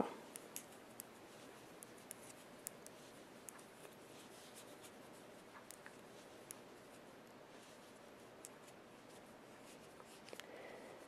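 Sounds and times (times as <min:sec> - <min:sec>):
knitting needles clicking: 0:00.3 - 0:01.2, 0:05.6 - 0:06.6.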